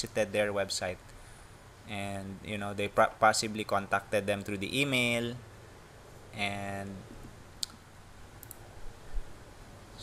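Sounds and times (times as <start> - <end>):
faint room hiss: 0.0 - 10.0
computer mouse clicking: 8.4 - 8.6.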